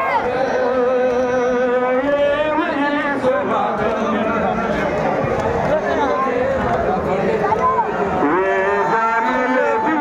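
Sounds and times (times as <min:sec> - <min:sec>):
person chanting over loudspeakers: 0:00.0 - 0:05.0, 0:05.8 - 0:10.0.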